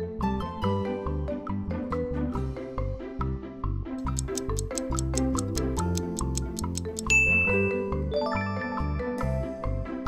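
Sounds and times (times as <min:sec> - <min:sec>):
upbeat background music: 0:00.0 - 0:10.0
countdown timer ticking: 0:04.0 - 0:07.9
bright bell ding: 0:07.1 - 0:07.9
chime: 0:07.1 - 0:09.1.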